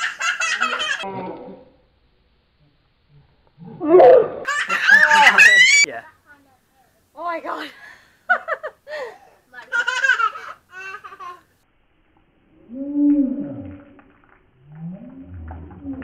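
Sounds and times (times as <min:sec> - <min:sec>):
woman laughing: 0:00.4 - 0:01.1, 0:04.5 - 0:05.9, 0:07.5 - 0:10.5
woman gargling: 0:01.0 - 0:01.8
water pouring from bottle: 0:13.1 - 0:16.0.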